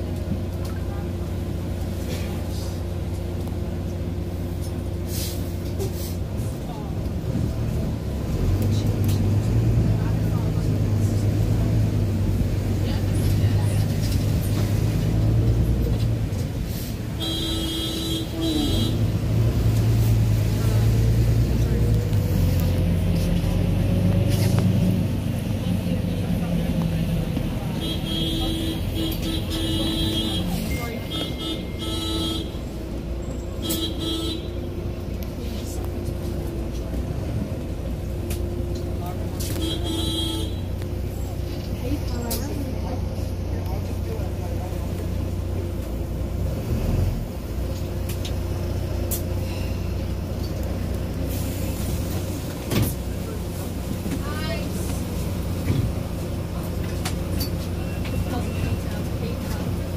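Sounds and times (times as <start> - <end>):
bus engine drone: 0.0 - 59.9
faint passenger voices: 0.0 - 59.9.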